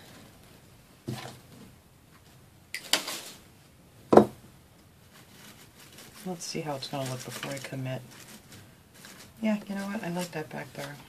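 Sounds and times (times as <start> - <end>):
tools knocking on tabletop: 4.1 - 4.4.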